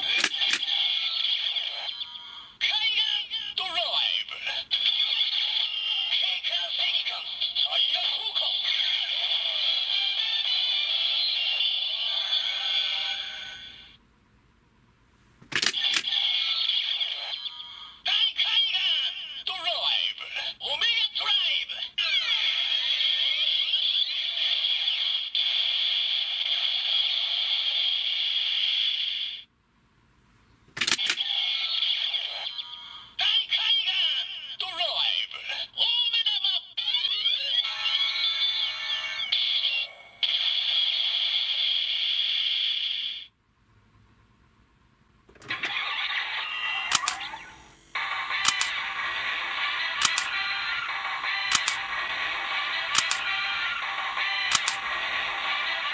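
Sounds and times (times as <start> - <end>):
tinny toy music: 0.0 - 14.0, 15.6 - 19.3, 36.8 - 42.2, 45.4 - 55.9
plastic click: 0.1 - 0.6, 46.9 - 47.4, 48.4 - 48.8, 50.0 - 50.3, 51.5 - 51.8, 53.0 - 53.2, 54.5 - 54.8
electronic announcer voice: 1.6 - 9.2, 17.2 - 24.1, 32.2 - 40.2, 45.4 - 55.9.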